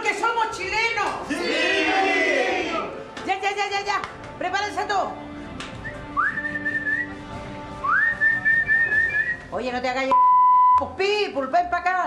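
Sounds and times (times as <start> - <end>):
long whistled notes: 5.8 - 7.2, 7.8 - 9.4.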